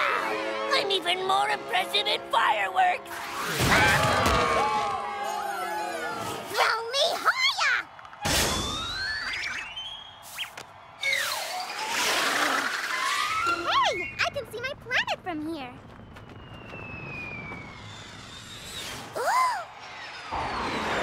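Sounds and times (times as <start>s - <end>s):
background music: 0.0s - 3.6s
cartoon crash: 3.2s - 4.9s, 8.2s - 9.6s
rising whistles: 8.5s - 14.4s, 15.8s - 21.0s.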